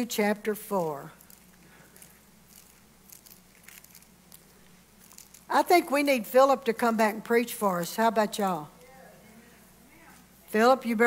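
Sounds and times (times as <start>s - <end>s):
low room hum: 0.0s - 11.0s
pages being turned: 1.2s - 5.5s.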